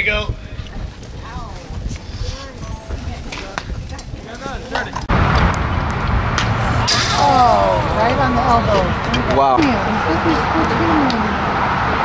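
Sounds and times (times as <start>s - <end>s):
faint voices: 0.0s - 5.1s, 6.6s - 12.0s
steady rumbling noise: 0.0s - 12.0s.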